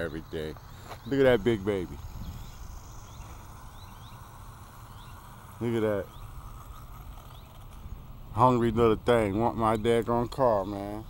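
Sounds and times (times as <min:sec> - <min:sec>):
faint bird chirps: 0:00.0 - 0:07.9
steady low rumble: 0:00.0 - 0:11.0.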